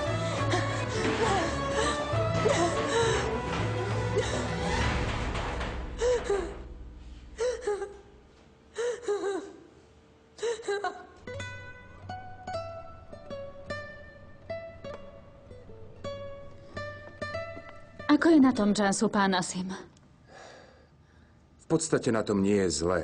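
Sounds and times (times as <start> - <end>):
plucked-string melody: 11.2 - 18.7.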